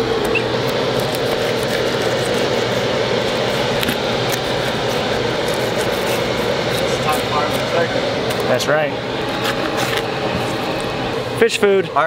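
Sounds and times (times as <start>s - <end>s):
steady engine drone: 0.0s - 12.0s.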